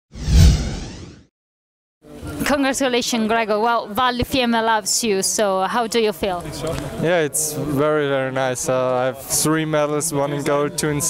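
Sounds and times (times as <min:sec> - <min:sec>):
whoosh with deep boom: 0:00.1 - 0:01.3.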